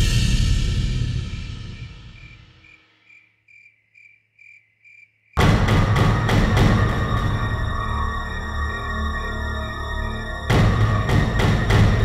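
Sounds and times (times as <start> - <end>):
tense music with heavy strikes: 0.0 - 2.6, 5.4 - 12.0
cricket chirping: 0.7 - 5.4
background music: 5.4 - 12.0.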